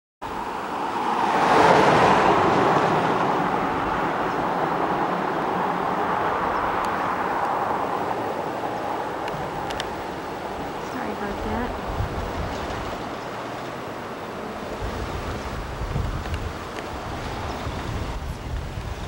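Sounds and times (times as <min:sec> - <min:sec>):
vehicle passing with rushing sound: 0:00.2 - 0:19.0
faint clicks: 0:09.2 - 0:10.0.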